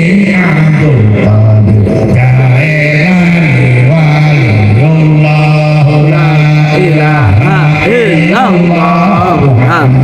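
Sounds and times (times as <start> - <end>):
man chanting through loudspeaker: 0.0 - 10.0.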